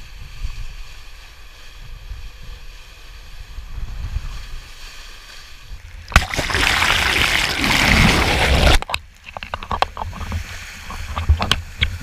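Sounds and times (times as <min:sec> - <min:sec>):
wind and water rumble: 0:00.0 - 0:12.0
water drops hitting camera housing: 0:06.1 - 0:06.9.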